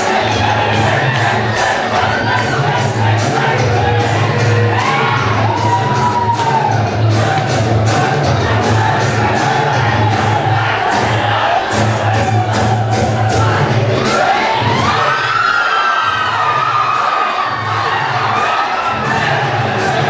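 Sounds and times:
audience cheering and whooping: 0:00.0 - 0:20.0
dance music with heavy bass: 0:00.0 - 0:20.0.

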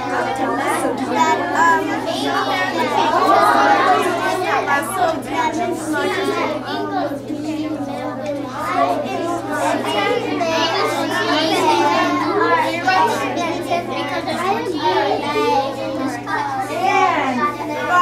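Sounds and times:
children talking at once: 0:00.0 - 0:18.0.

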